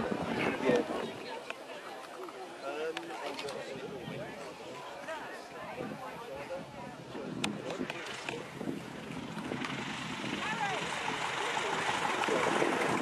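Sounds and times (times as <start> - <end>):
aircraft engine and propeller: 7.0 - 13.0.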